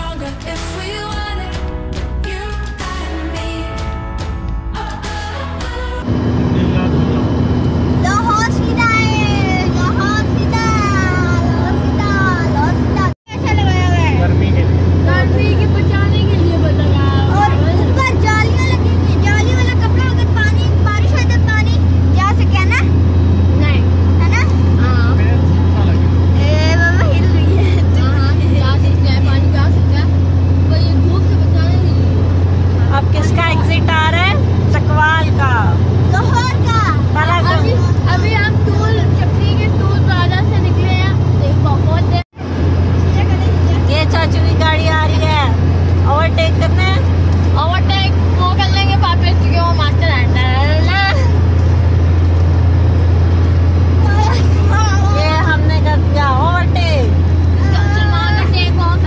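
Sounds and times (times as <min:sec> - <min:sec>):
car cabin drone: 0:04.5 - 0:59.0
voices chattering: 0:06.6 - 0:52.9, 0:53.7 - 0:59.0.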